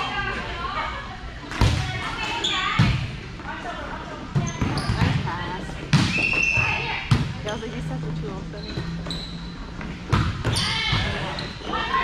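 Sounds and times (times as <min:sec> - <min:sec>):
players' voices: 0:00.0 - 0:12.0
volleyball being hit: 0:05.9 - 0:07.4.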